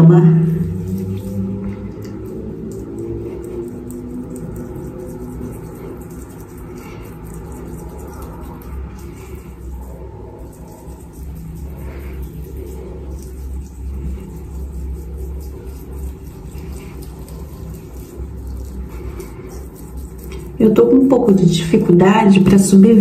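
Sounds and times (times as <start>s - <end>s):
faint hum: 0.0s - 23.0s
low rumble: 0.0s - 23.0s.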